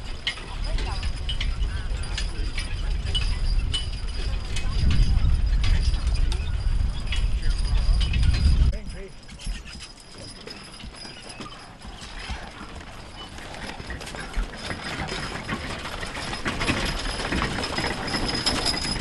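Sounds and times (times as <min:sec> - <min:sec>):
horse hooves clip-clopping: 0:00.0 - 0:19.0.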